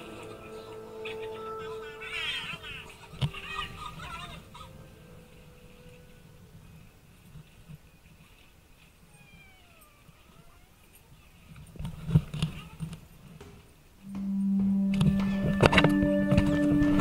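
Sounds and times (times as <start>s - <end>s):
background music with percussive beats: 14.1s - 17.0s.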